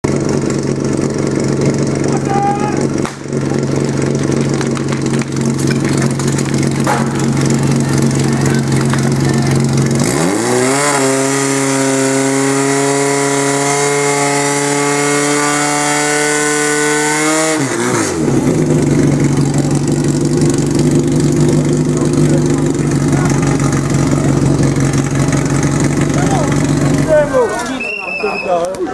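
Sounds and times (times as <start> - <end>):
pump engine revving: 0.0 - 27.7
voices: 2.1 - 10.1, 21.7 - 28.9.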